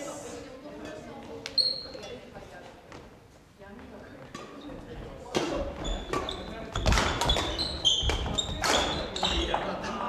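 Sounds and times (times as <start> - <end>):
shoe squeaks: 1.5 - 2.2, 5.8 - 9.6.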